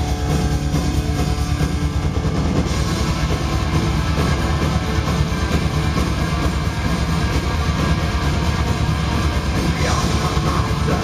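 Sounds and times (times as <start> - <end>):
live metal band playing: 0.0 - 11.0.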